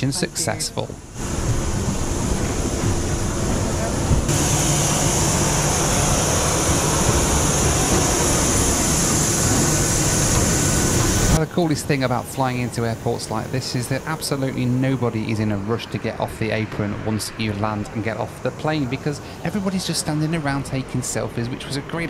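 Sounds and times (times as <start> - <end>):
parked airliner running noise: 0.0 - 22.0
strong high hiss: 0.0 - 22.0.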